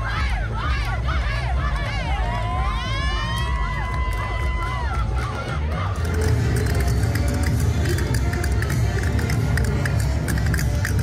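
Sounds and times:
crowd cheering: 0:00.0 - 0:08.0
music with heavy bass beat: 0:00.0 - 0:11.0.

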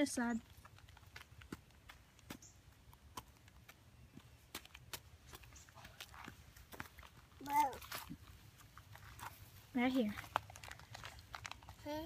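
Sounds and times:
footsteps on dry soil: 0:00.0 - 0:10.4.

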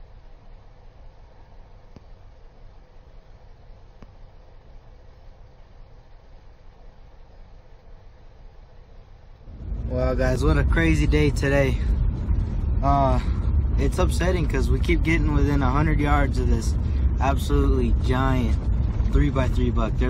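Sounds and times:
low rumble with light hiss: 0:00.0 - 0:20.0.

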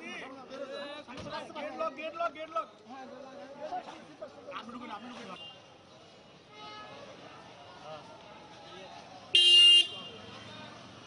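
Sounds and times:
street noise: 0:00.0 - 0:11.0
vehicle horn toot: 0:09.4 - 0:10.2.

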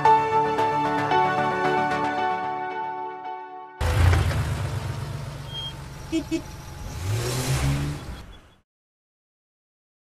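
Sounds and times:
van engine revving: 0:03.8 - 0:08.6.

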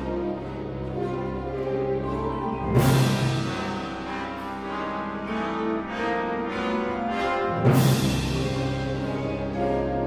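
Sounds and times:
orchestra with marimba: 0:00.0 - 0:10.0.

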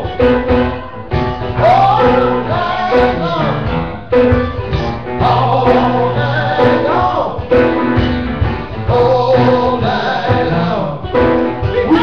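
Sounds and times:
grand piano: 0:00.0 - 0:12.0.

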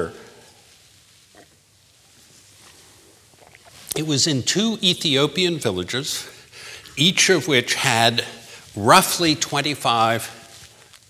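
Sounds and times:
man drinking and swallowing: 0:02.6 - 0:04.0.

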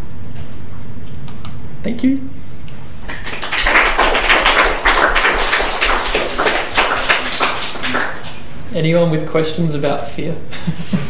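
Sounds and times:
audience applause: 0:03.0 - 0:08.5.

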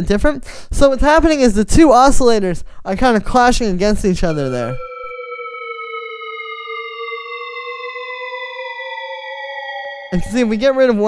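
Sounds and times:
sustained synth tone: 0:04.2 - 0:10.7.

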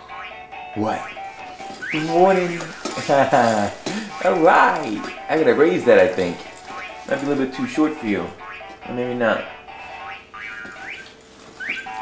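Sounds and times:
electronic toy tune: 0:00.0 - 0:02.7, 0:08.4 - 0:12.0
slide-whistle effects: 0:01.8 - 0:02.2, 0:10.8 - 0:12.0.

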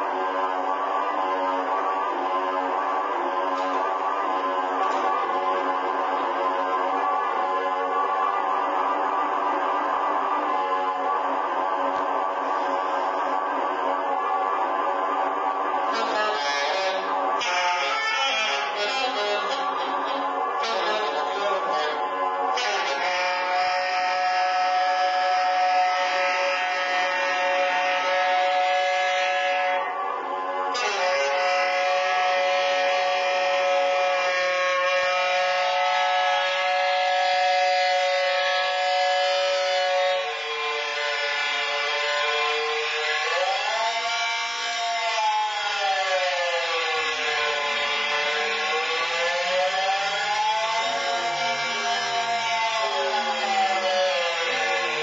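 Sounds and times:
saxophone sustained tones: 0:15.8 - 0:30.1, 0:30.7 - 0:55.0.

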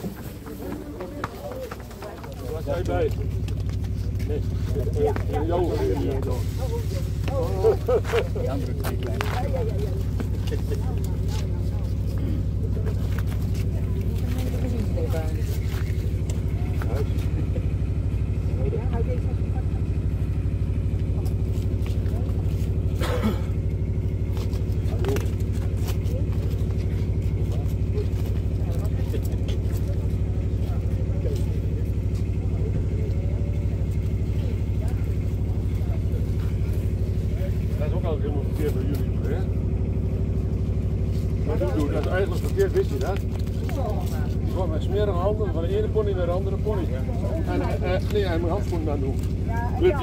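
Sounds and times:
engine idling: 0:00.0 - 0:50.0
faint voices: 0:00.0 - 0:50.0.

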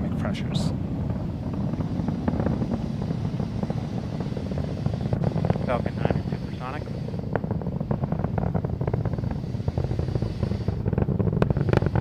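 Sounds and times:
rocket engines rumbling: 0:00.0 - 0:12.0.

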